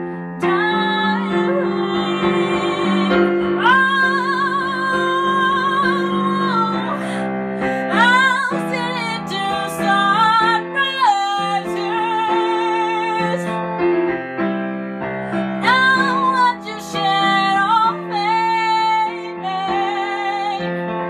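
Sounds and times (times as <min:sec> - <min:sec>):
keyboard piano chords: 0:00.0 - 0:21.0
woman singing with vibrato: 0:00.4 - 0:13.6, 0:15.6 - 0:20.7.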